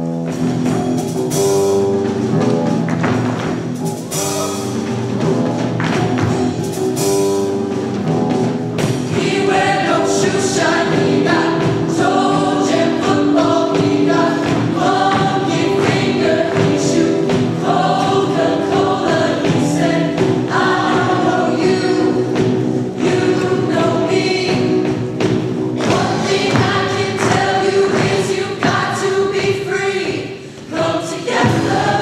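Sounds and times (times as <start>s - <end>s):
steady beat: 0.3s - 30.1s
choir singing in harmony: 8.9s - 32.0s.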